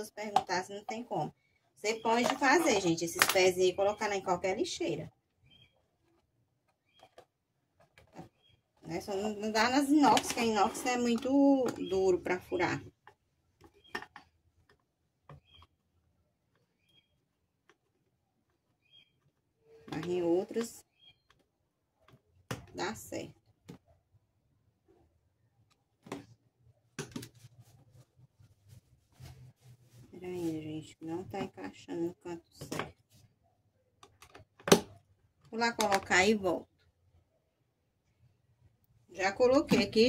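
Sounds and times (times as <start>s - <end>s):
woman's voice: 0.0s - 5.1s, 8.9s - 12.9s, 19.9s - 20.8s, 22.8s - 23.3s, 30.1s - 32.8s, 35.5s - 36.6s, 39.1s - 40.0s.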